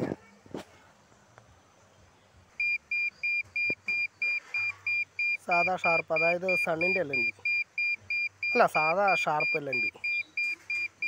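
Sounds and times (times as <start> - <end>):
short high beeps: 2.6 - 11.0.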